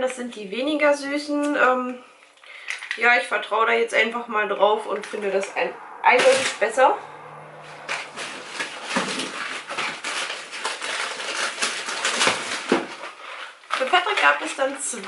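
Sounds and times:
shopping bag rustling: 7.7s - 15.0s.

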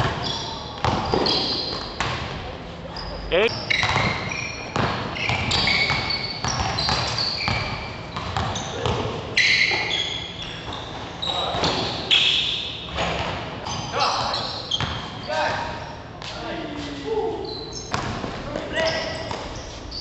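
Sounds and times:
sneakers squeaking on court: 0.0s - 16.2s, 17.4s - 20.0s
players' voices: 2.5s - 3.5s.

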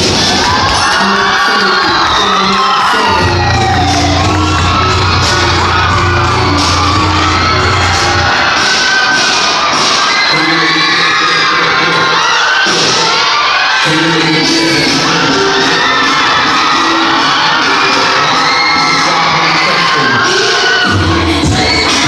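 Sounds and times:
cheer dance mix music: 0.0s - 22.0s
crowd shouting and cheering: 0.0s - 22.0s
deep bass note: 3.2s - 8.4s.

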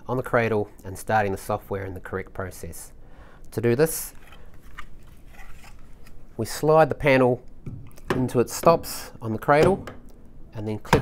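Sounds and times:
hands scraping and rustling: 4.1s - 6.3s.

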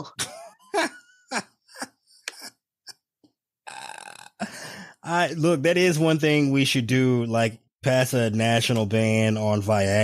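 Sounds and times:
person's throaty breathy vocal bursts: 3.6s - 5.0s.

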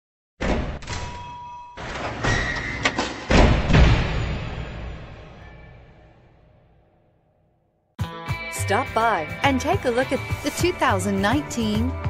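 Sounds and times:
deep ringing impact: 3.2s - 7.0s
swelling cinematic hits: 3.3s - 7.0s.

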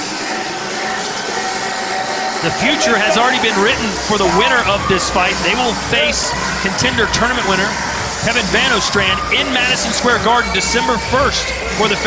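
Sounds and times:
background music: 0.0s - 12.0s
arena ambience: 0.2s - 12.0s.

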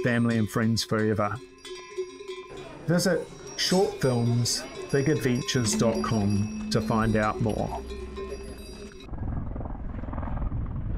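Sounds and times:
bell-like ringing tone: 0.0s - 9.1s
low fast-pulsing rumble: 6.5s - 10.9s.

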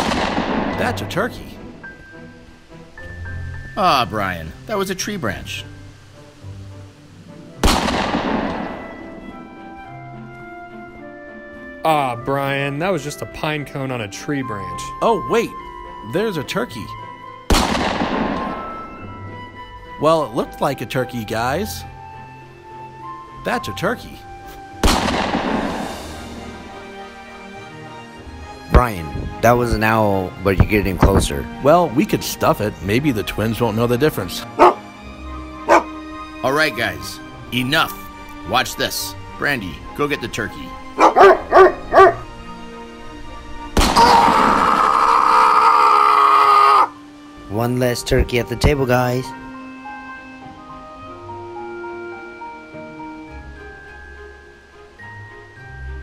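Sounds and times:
shotgun blast: 0.0s - 1.1s, 7.6s - 9.0s, 17.5s - 18.7s, 24.8s - 26.2s, 43.8s - 44.5s
background music: 0.0s - 56.0s
cartoon bang: 43.8s - 44.6s.

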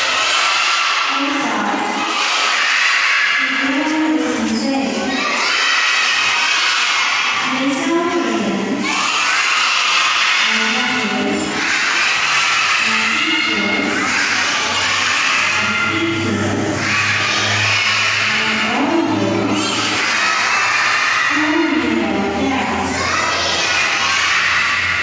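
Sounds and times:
children singing together: 0.0s - 25.0s.

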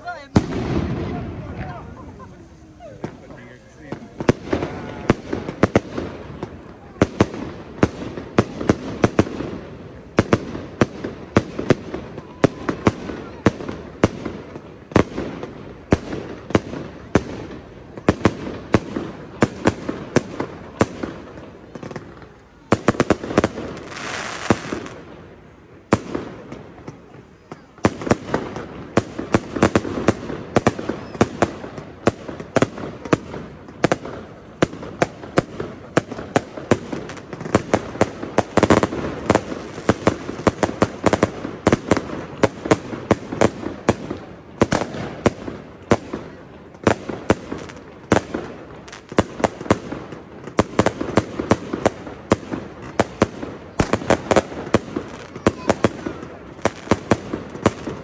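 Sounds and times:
fireworks bangs and cracks: 0.0s - 58.0s
fireworks hissing: 0.0s - 58.0s.

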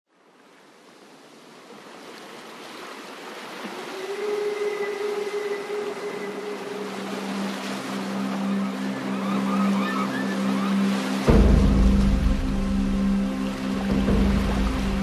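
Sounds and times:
surf-like noise wash: 0.2s - 15.0s
ambient music held tones: 3.6s - 15.0s
low sustained chord: 4.3s - 15.0s.

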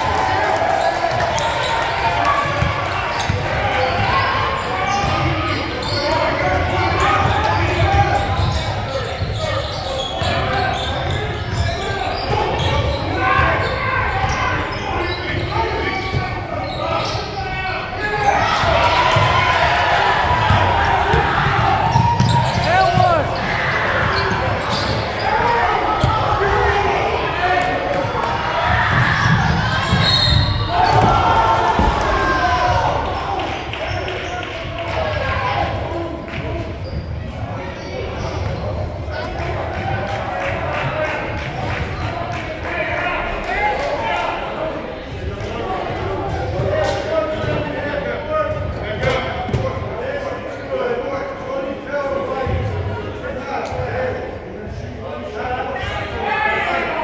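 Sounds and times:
sneakers squeaking: 0.6s - 26.8s, 28.9s - 34.6s, 36.4s - 39.4s
people calling out: 9.4s - 34.4s.

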